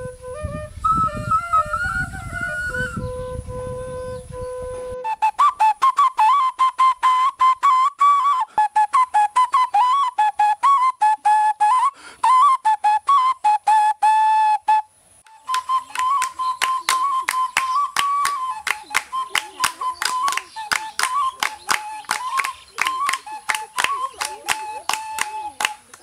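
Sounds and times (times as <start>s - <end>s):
clay whistle tooting: 0.0s - 26.0s.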